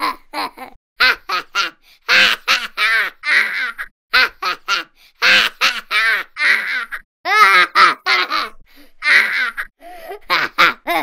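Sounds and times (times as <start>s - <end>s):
baby laughing: 0.0s - 11.0s.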